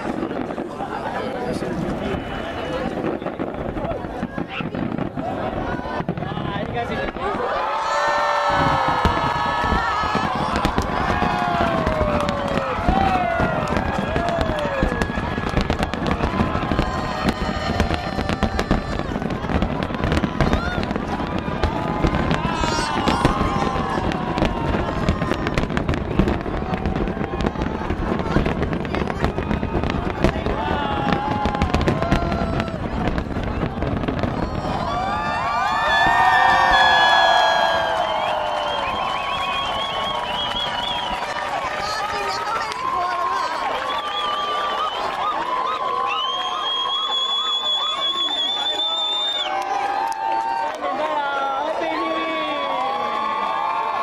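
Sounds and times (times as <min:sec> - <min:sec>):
crowd cheering: 0:00.0 - 0:54.0
fireworks bangs and crackles: 0:00.0 - 0:54.0
onlookers exclaiming: 0:00.0 - 0:54.0.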